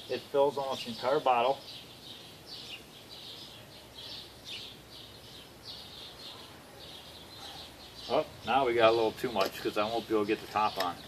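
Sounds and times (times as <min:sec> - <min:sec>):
faint background hiss: 0:00.0 - 0:11.0
small birds chirping: 0:00.0 - 0:11.0.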